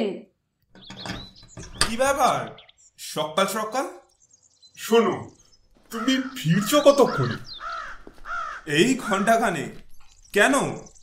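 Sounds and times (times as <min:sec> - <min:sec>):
people speaking dialogue: 0:00.0 - 0:00.4, 0:01.8 - 0:04.1, 0:04.7 - 0:11.0
crow cawing: 0:05.9 - 0:09.3.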